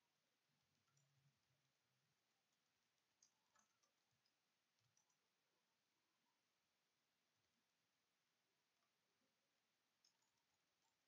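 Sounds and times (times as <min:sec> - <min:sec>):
very faint clicks: 0:02.4 - 0:05.4.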